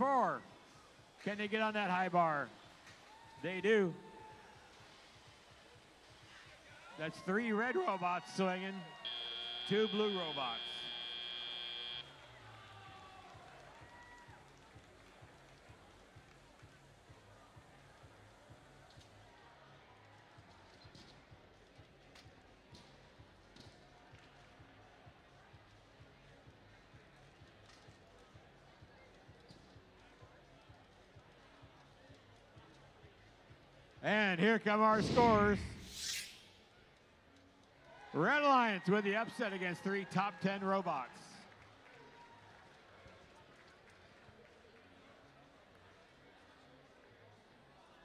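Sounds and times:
faint crowd noise: 0:00.0 - 0:48.0
quiet arena background: 0:00.0 - 0:48.0
buzzer steady high tone: 0:08.3 - 0:12.1.

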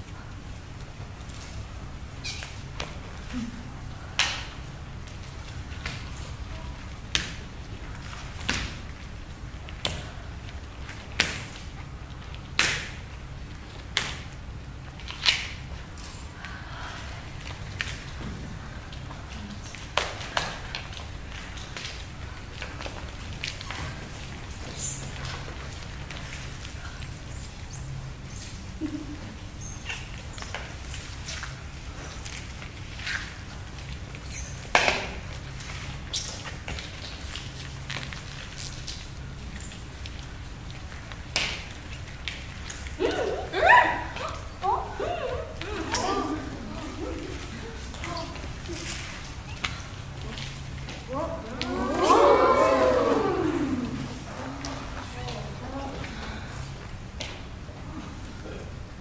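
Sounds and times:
bare feet on wooden stage: 0:00.0 - 0:59.0.

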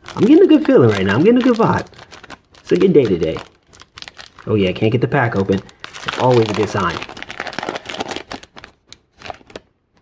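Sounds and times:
foil wrapper crinkling: 0:00.0 - 0:09.7.

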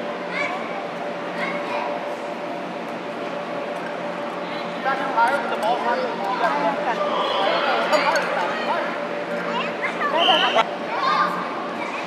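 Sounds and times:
indistinct voices in an arena: 0:00.0 - 0:12.0
steady hum: 0:00.0 - 0:12.0.

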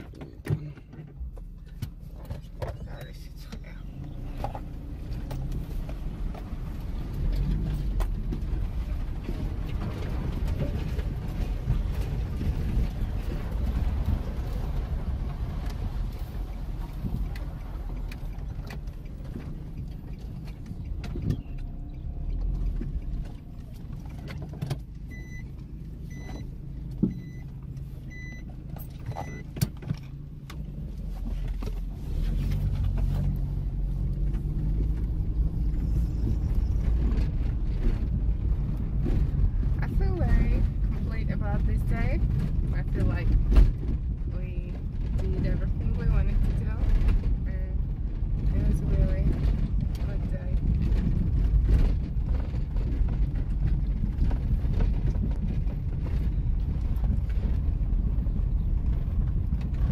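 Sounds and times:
car engine rumble: 0:00.0 - 0:59.9
dashboard chime beeps: 0:27.1 - 0:27.5.

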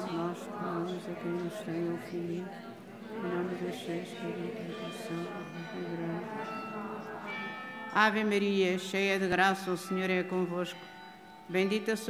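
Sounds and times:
bells ringing: 0:00.0 - 0:12.0.

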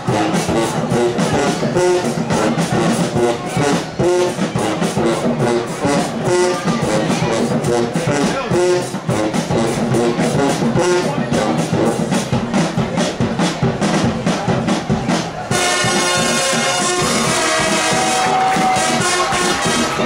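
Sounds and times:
driving drum beat: 0:00.0 - 0:20.0
marching band brass: 0:00.0 - 0:20.0.

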